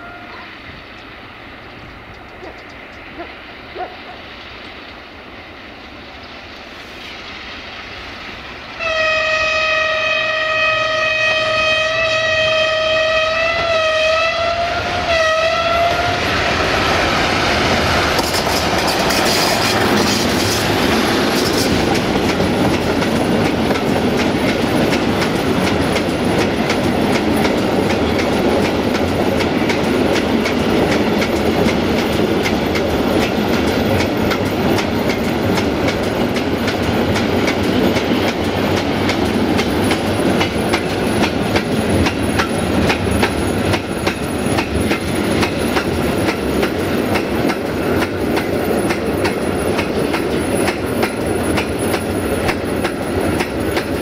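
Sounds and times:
train wheels rumbling on rail: 0:00.0 - 0:54.0
wheels clicking over rail joints: 0:00.3 - 0:03.9, 0:17.6 - 0:54.0.

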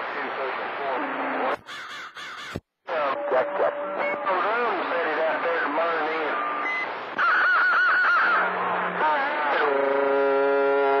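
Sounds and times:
warbling wail over radio: 0:07.2 - 0:11.0.

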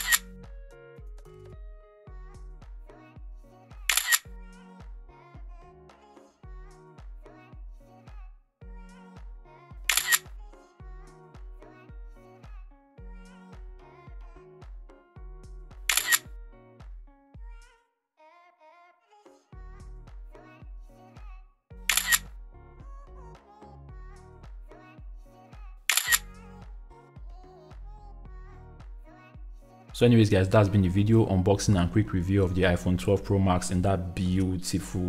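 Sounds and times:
camera shutter click: 0:00.0 - 0:00.2, 0:03.9 - 0:04.3, 0:09.9 - 0:10.3, 0:15.9 - 0:16.3, 0:21.9 - 0:22.2, 0:25.9 - 0:26.3
background music with bass line: 0:00.0 - 0:17.6, 0:19.6 - 0:35.0.

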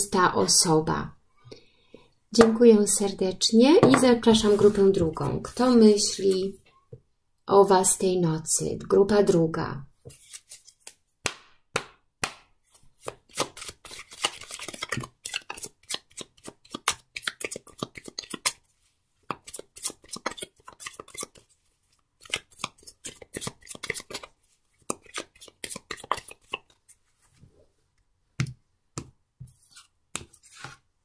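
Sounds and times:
cards being shuffled: 0:10.1 - 0:11.0, 0:12.7 - 0:18.6, 0:19.3 - 0:21.5, 0:22.2 - 0:26.9, 0:29.6 - 0:30.8.

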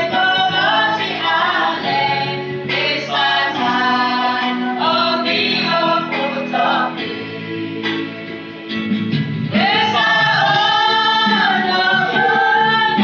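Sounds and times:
mixed choir singing: 0:00.0 - 0:08.2, 0:09.5 - 0:13.0.

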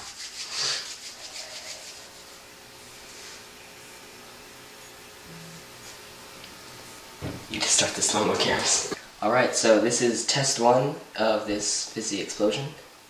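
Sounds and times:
faint steady hum: 0:00.0 - 0:13.0
low steady hiss: 0:00.0 - 0:13.0.

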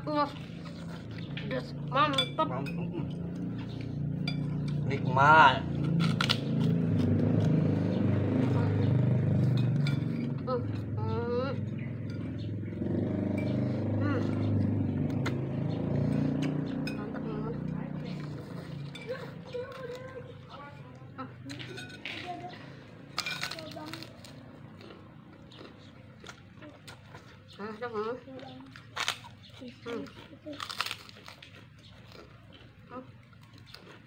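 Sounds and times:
chewing: 0:00.1 - 0:05.1, 0:05.7 - 0:34.0
spoons clinking against bowls: 0:01.9 - 0:03.2, 0:04.2 - 0:04.9, 0:09.4 - 0:10.9, 0:11.8 - 0:12.6, 0:16.1 - 0:22.4.

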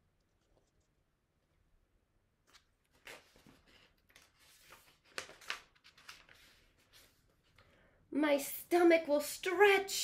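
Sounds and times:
book pages rustling and turning: 0:02.4 - 0:07.8.

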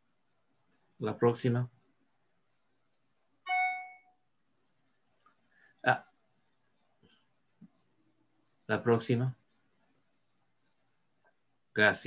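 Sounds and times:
electronic bell-like chime: 0:03.5 - 0:04.2.

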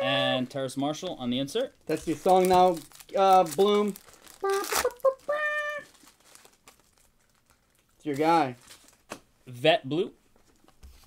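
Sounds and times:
foil wrapper ripping: 0:01.9 - 0:07.8
foil and cards rustling: 0:01.9 - 0:09.2.

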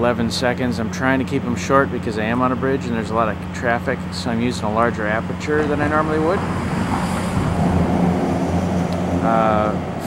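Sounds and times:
traffic rumble on bridge: 0:00.0 - 0:10.0.

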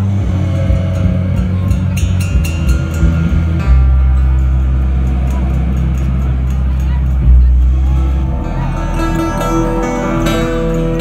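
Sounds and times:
bluegrass string band playing: 0:00.0 - 0:11.0
deep sustained low note: 0:00.0 - 0:11.0
plucked string notes: 0:00.0 - 0:11.0.

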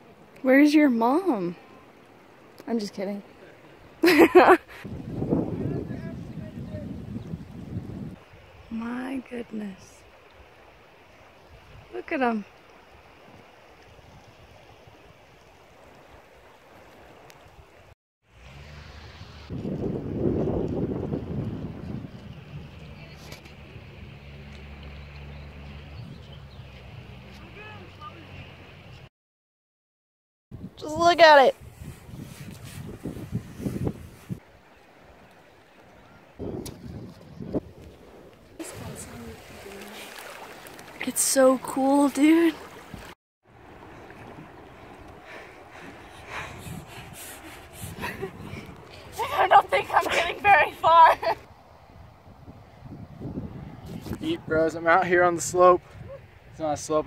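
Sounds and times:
wind buffeting microphone: 0:04.7 - 0:08.8, 0:19.0 - 0:29.0, 0:30.5 - 0:35.3, 0:35.9 - 0:41.8, 0:42.6 - 0:57.0
bare feet splashing in water: 0:37.7 - 0:51.4.

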